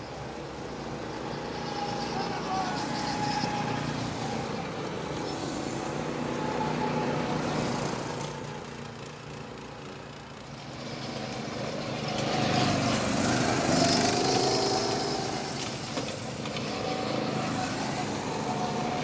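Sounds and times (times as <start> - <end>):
go-kart engines: 0.0 - 19.0.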